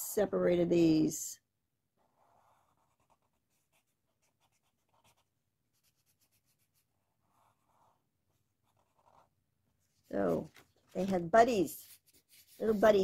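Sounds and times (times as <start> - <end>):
marker scratching on paper: 2.0 - 13.0.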